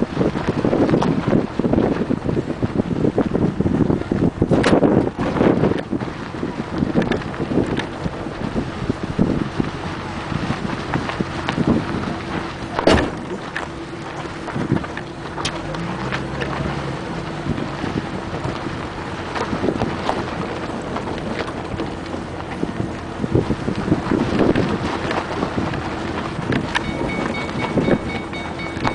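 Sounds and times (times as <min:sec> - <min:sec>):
wind buffeting microphone: 0:00.0 - 0:28.9.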